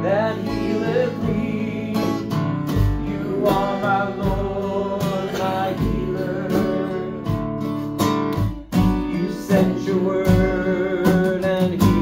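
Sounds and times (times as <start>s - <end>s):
man singing: 0.0s - 7.6s, 8.8s - 12.0s
acoustic guitar strumming: 0.0s - 12.0s.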